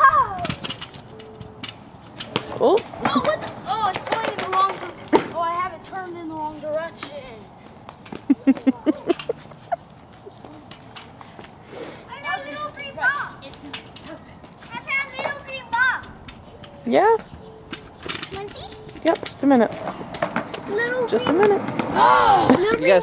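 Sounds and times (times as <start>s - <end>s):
children laughing and calling out: 0.0s - 0.7s, 2.8s - 7.4s, 8.1s - 16.3s, 20.4s - 23.0s
clatter of sharp knocks: 1.6s - 5.4s.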